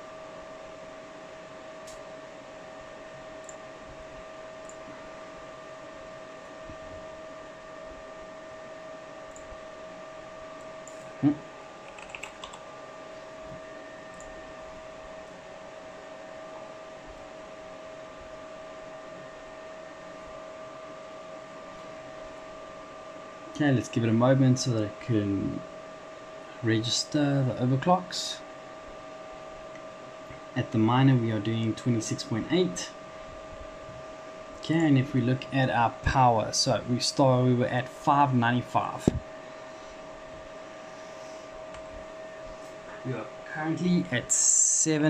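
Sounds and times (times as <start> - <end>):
computer rig whirring hum: 0.0 - 45.0
keyboard clicks: 11.8 - 12.6.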